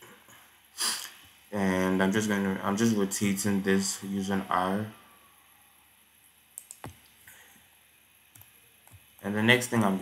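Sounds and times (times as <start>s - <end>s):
low room hiss: 0.0s - 10.0s
computer mouse clicks: 6.6s - 7.2s, 8.3s - 9.2s.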